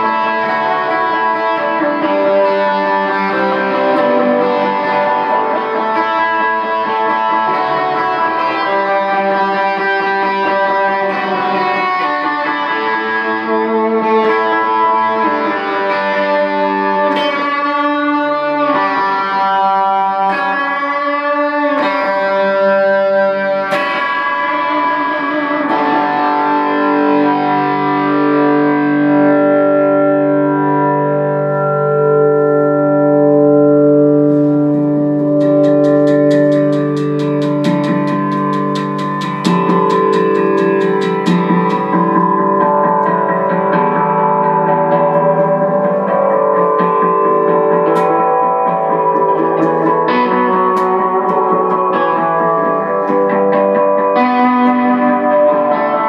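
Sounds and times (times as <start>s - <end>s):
electric guitar with delay: 0.0s - 56.0s.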